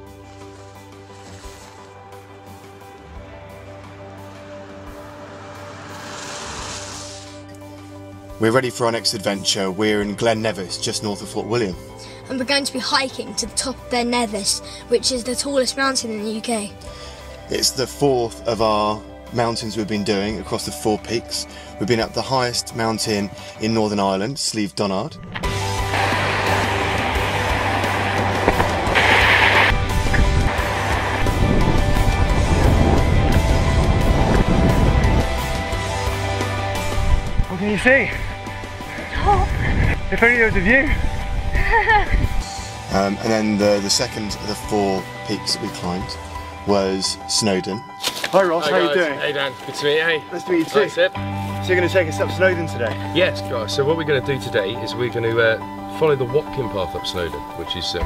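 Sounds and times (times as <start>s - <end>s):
background music: 0.0s - 58.0s
car tyres hissing on wet road: 0.1s - 7.5s, 25.6s - 35.6s
burst of hiss: 5.3s - 7.5s, 25.7s - 31.4s
wind rumble on microphone: 25.4s - 35.9s, 38.1s - 42.5s.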